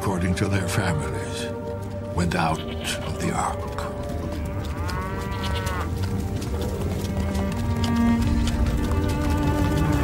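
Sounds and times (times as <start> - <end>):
background music: 0.0 - 10.0
cow mooing: 4.7 - 6.0.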